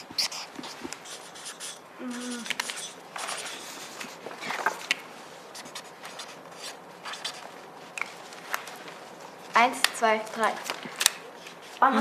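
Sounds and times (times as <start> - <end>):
pens scratching on paper: 0.0 - 8.8.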